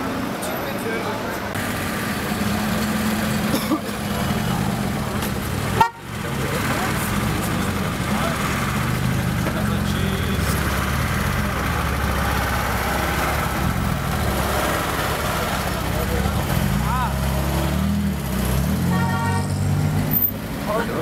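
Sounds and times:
vehicle engine idling: 0:00.0 - 0:19.4
indistinct voices: 0:00.0 - 0:19.9.

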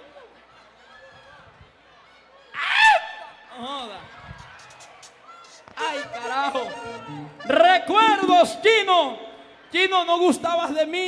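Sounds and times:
faint crowd murmur: 0:00.0 - 0:11.0.

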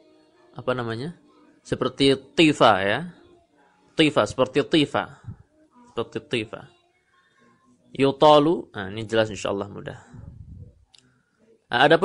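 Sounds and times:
man speaking: 0:00.6 - 0:03.2, 0:04.0 - 0:05.4, 0:06.0 - 0:06.7, 0:08.0 - 0:10.6, 0:11.7 - 0:12.0.

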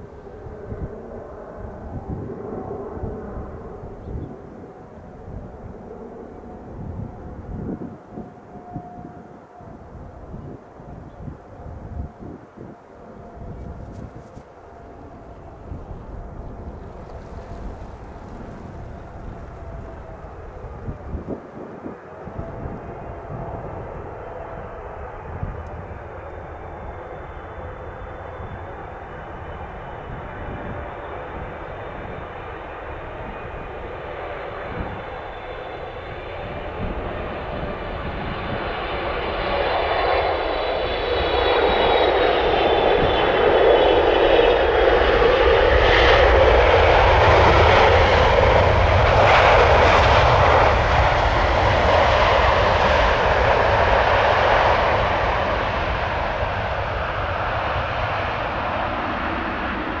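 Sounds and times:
jet engines roaring on landing: 0:00.0 - 1:00.0.

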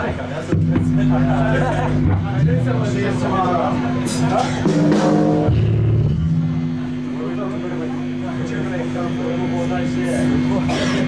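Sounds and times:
bass guitar notes: 0:00.0 - 0:09.2
crowd voices: 0:00.0 - 0:11.0
stage amplifiers humming: 0:00.0 - 0:11.0
guitar chord: 0:01.0 - 0:07.1.

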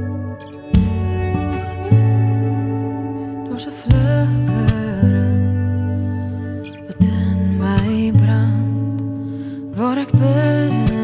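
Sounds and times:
electric guitar chord: 0:00.0 - 0:11.0
scratchy guitar strum: 0:00.0 - 0:11.0.

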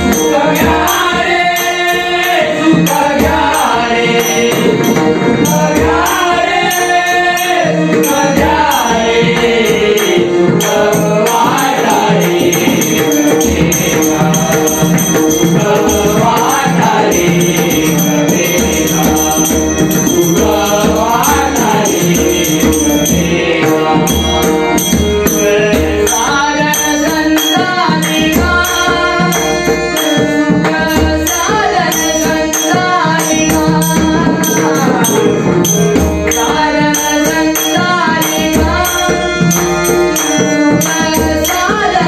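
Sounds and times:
group singing: 0:00.0 - 0:42.0
harmonium drone: 0:00.0 - 0:42.0.

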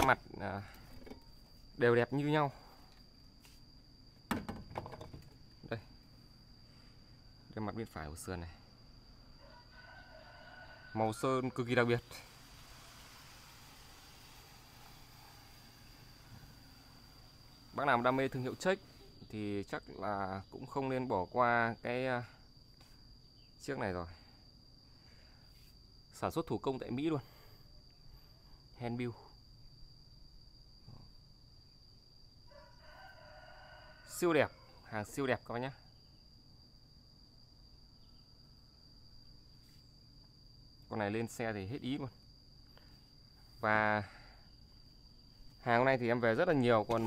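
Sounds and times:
faint drawn-out animal call: 0:06.7 - 0:19.6, 0:32.4 - 0:35.9
faint rooster crow: 0:07.2 - 0:19.8, 0:32.4 - 0:35.9
thin high-pitched whine: 0:09.4 - 0:19.8.

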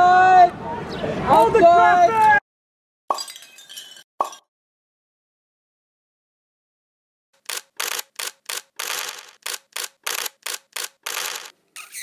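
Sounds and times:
sharp clicks and noise bursts: 0:07.4 - 0:11.6.

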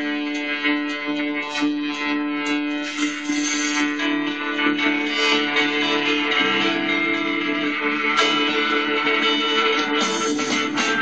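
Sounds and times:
guitar-led rock music: 0:00.0 - 0:11.0.

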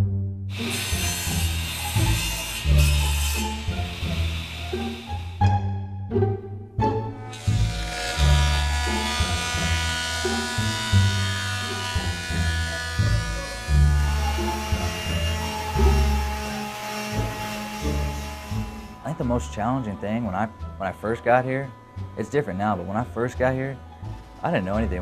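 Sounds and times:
background music with bass line: 0:00.0 - 0:25.0
thickness planer motor whine: 0:00.5 - 0:05.7, 0:07.0 - 0:20.7.

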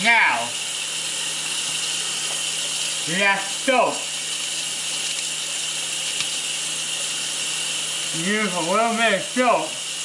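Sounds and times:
tap running into metal sink: 0:02.2 - 0:02.8, 0:06.0 - 0:06.5.

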